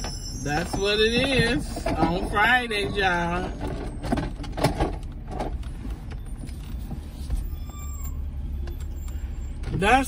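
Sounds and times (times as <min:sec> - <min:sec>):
faint high squeaks: 0:00.0 - 0:04.1, 0:06.2 - 0:09.6
car engine rumble: 0:00.0 - 0:10.0
road noise: 0:00.0 - 0:10.0.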